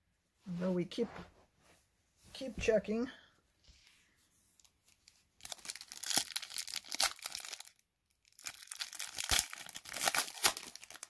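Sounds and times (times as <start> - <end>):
foil wrapper tearing and crinkling: 5.4 - 11.0.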